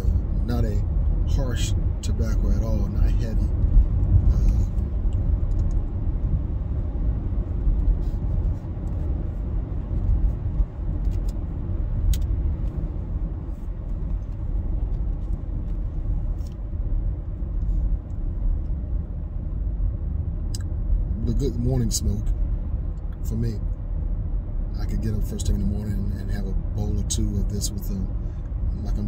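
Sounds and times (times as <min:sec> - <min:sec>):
road and engine rumble in car: 0:00.0 - 0:29.0.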